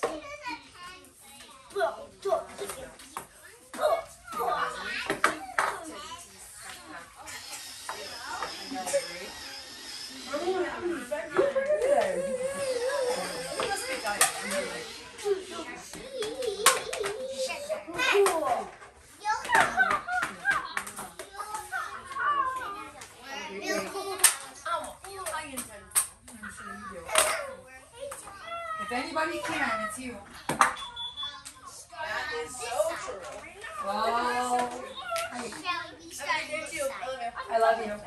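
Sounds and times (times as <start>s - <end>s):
children chattering and calling out: 0.0s - 38.0s.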